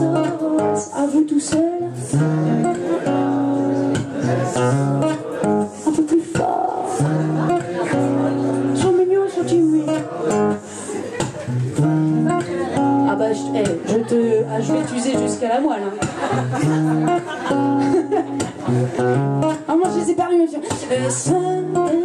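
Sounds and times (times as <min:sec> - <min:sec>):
woman singing: 0:00.0 - 0:02.8, 0:05.8 - 0:07.6, 0:08.7 - 0:10.1, 0:13.0 - 0:16.0, 0:19.5 - 0:22.0
acoustic guitar strumming: 0:00.0 - 0:22.0.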